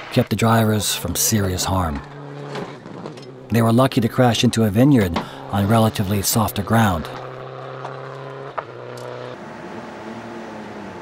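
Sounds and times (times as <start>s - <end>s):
vehicle engine hum: 0.9s - 11.0s.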